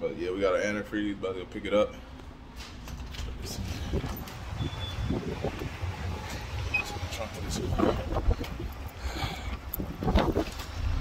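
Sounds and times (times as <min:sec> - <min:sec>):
wind rumble: 0:03.4 - 0:11.0
microphone handling noise: 0:07.5 - 0:08.8, 0:09.5 - 0:10.8.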